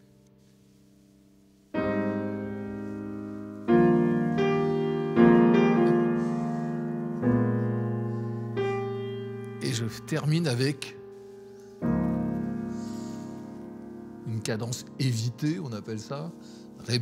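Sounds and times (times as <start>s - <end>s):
piano jazz chords: 0.0s - 17.0s
man speaking: 9.6s - 11.0s, 14.3s - 17.0s.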